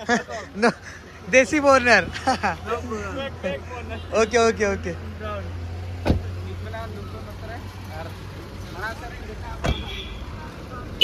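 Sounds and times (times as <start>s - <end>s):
car door shutting: 6.0s - 6.3s.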